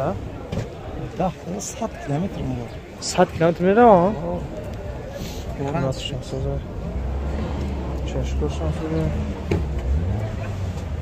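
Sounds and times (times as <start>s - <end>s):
car engine idling: 0.0s - 11.0s
faint voices: 0.0s - 11.0s.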